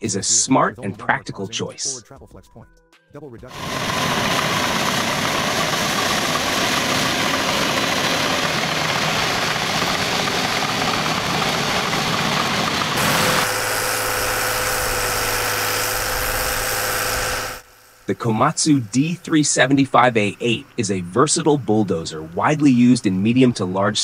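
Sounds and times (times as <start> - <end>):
bulldozer diesel engine: 3.5 - 22.5
held whine: 3.5 - 24.0
track and dirt noise: 3.5 - 24.0.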